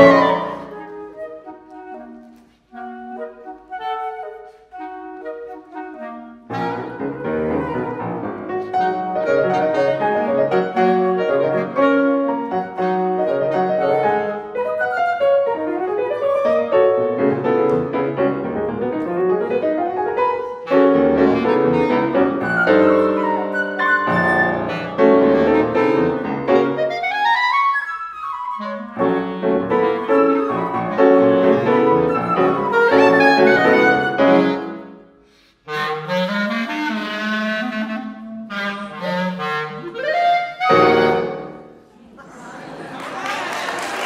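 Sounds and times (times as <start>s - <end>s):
chamber trio playing: 0.0s - 3.8s, 20.1s - 27.0s, 28.6s - 35.0s, 35.7s - 42.0s
clarinet solo with quick runs: 0.0s - 17.9s, 19.0s - 35.0s, 35.7s - 41.8s.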